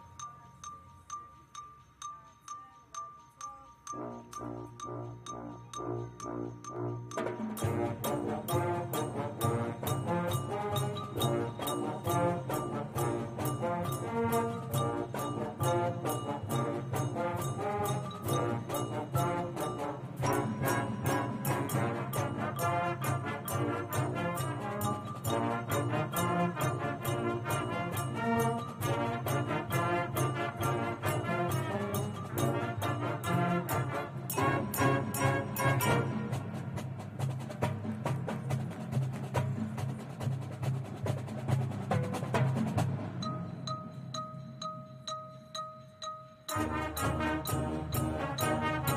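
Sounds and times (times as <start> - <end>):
brass chords: 4.0 - 36.8, 46.5 - 48.9
marching band playing: 4.0 - 45.1, 46.4 - 48.9
driving drum beat: 6.2 - 45.1, 46.5 - 48.9.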